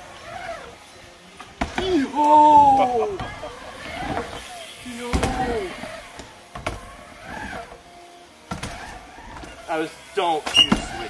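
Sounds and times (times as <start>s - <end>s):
bike riding on wooden ramp: 0.0s - 11.0s.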